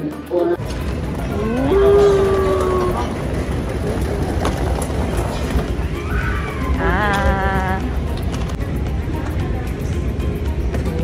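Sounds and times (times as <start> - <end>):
moving walkway rumble: 0.6 - 11.0.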